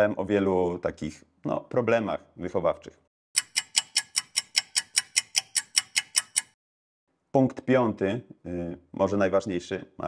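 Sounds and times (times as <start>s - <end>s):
fast clock ticking: 3.4s - 6.6s.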